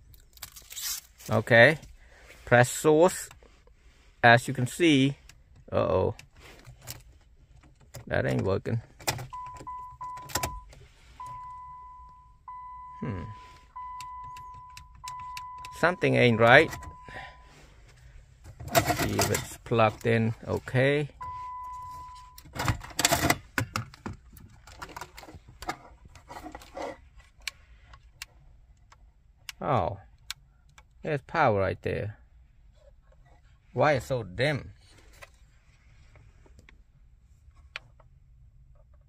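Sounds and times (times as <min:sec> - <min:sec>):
dashboard warning chime: 0:09.3 - 0:17.7, 0:21.1 - 0:22.6
high electronic beep: 0:09.4 - 0:17.5, 0:21.2 - 0:22.4.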